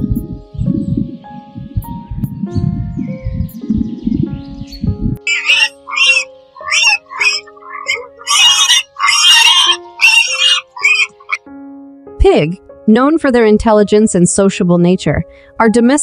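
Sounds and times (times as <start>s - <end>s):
low rumble: 0.0s - 5.2s
background music with held notes: 0.0s - 16.0s
pigs squealing: 5.3s - 11.4s.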